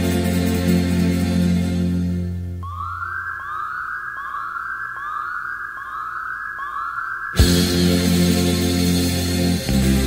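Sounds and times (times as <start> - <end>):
electronic siren-like whooping: 2.6 - 8.7.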